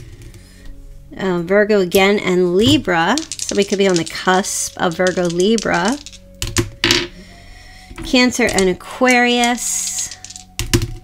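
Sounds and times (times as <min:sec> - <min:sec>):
dice clicking and clattering: 0:02.6 - 0:07.1, 0:08.0 - 0:11.0.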